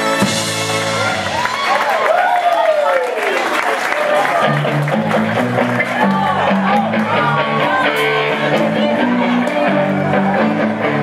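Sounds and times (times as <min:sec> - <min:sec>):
live rock band playing: 0:00.0 - 0:01.8, 0:04.1 - 0:11.0
crowd noise: 0:00.0 - 0:11.0
clapping: 0:01.4 - 0:07.2.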